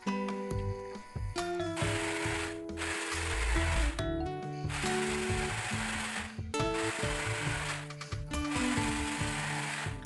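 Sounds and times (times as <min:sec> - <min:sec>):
background music: 0:00.0 - 0:10.0
jigsaw cutting wood: 0:01.7 - 0:04.0, 0:04.7 - 0:10.0.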